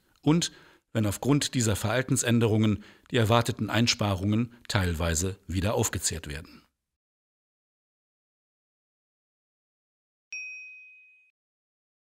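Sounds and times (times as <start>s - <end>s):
high bell-like ding chime: 10.3s - 11.4s.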